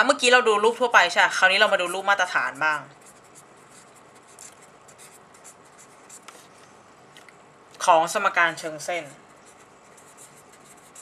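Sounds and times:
person speaking: 0.0 - 6.5, 7.7 - 10.9
pen scratching on paper: 1.6 - 6.5, 9.0 - 11.0.

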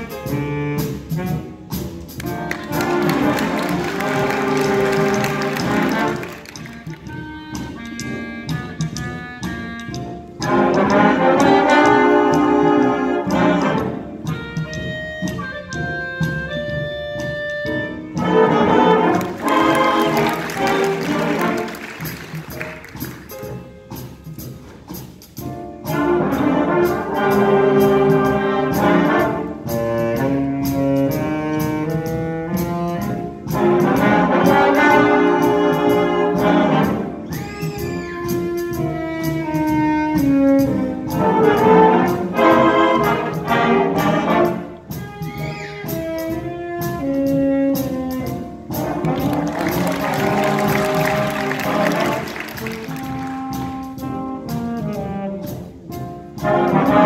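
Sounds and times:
concert band of saxophones and brass: 0.0 - 57.0.

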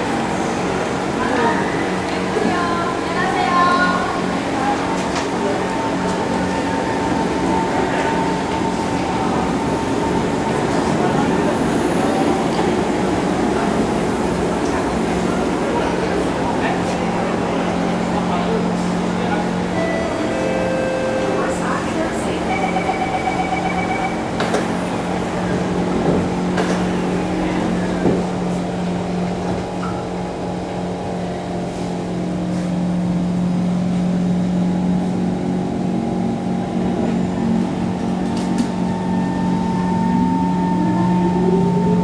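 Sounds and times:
train equipment hum: 0.0 - 42.0.

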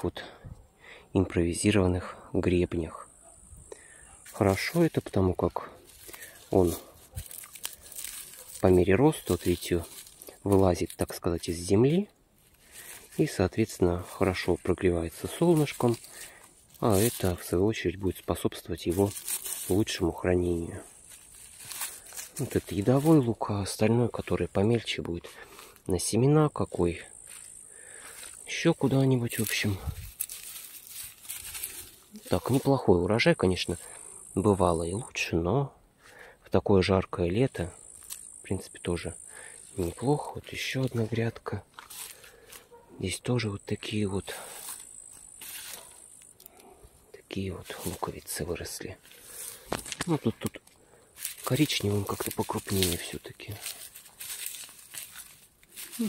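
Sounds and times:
onion skins rustling: 4.3 - 11.6, 12.4 - 23.4, 28.2 - 32.8, 44.4 - 46.6, 49.0 - 56.0.

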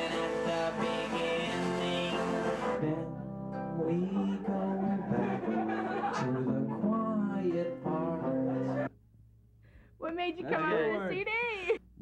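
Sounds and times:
electric guitars playing: 0.0 - 8.9
man singing: 0.0 - 8.9.

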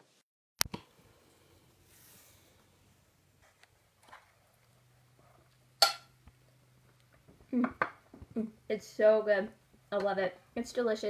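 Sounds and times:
fork clinking on bowl: 5.8 - 6.1.

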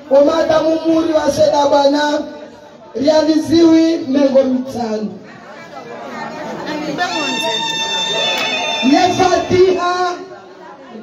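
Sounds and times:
crowd of people talking: 0.0 - 11.0.

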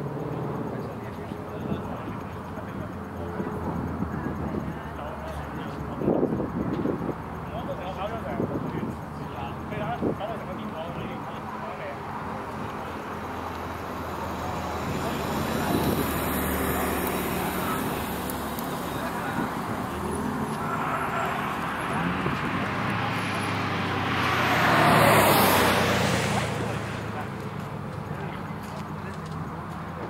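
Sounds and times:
car engine passing by: 9.4 - 30.0.

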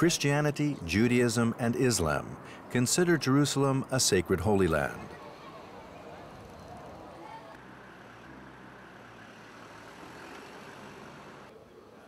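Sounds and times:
faint voices of passersby: 0.0 - 8.3, 9.4 - 12.0.

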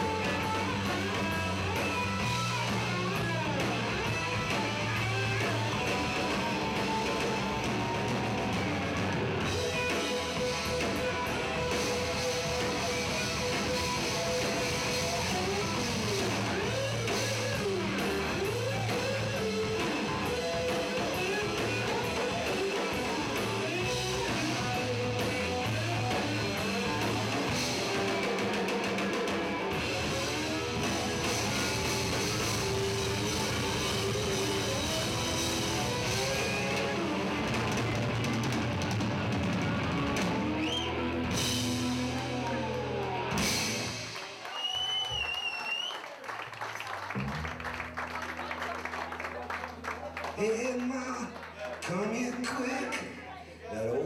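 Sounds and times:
electric guitar lead with bent notes: 0.0 - 44.4
live rock band playing: 0.0 - 53.3.

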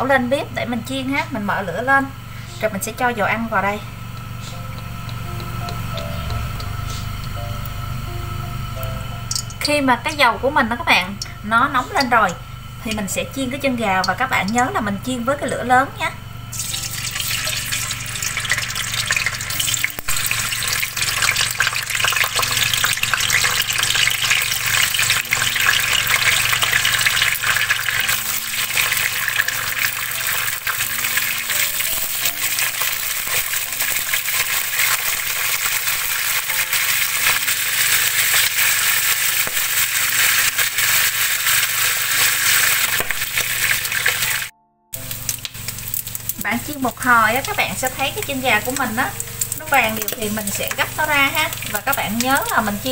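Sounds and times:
deep-frying sizzling and crackling: 0.0 - 52.9.

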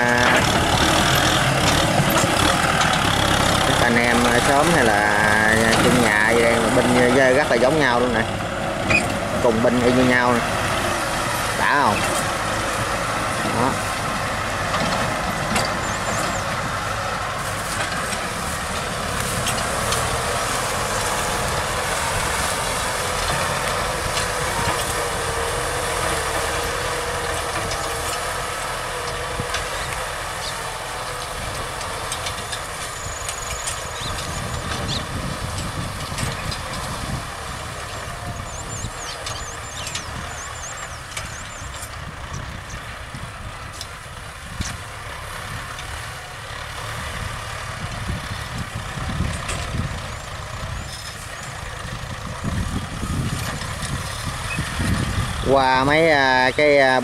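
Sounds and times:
tractor diesel engines under load: 0.0 - 57.0.

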